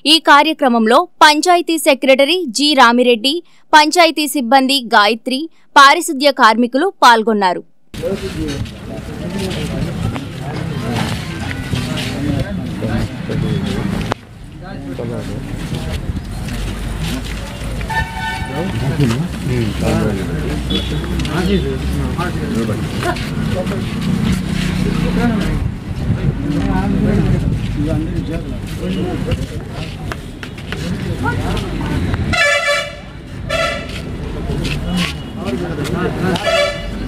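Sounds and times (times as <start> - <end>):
people's voices: 8.0 - 37.0
vehicle horn toot: 17.9 - 18.7, 20.7 - 21.8, 32.3 - 33.9, 36.4 - 37.0.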